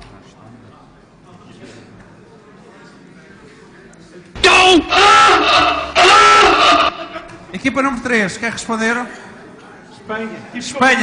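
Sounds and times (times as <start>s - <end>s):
person wailing: 4.4s - 7.3s.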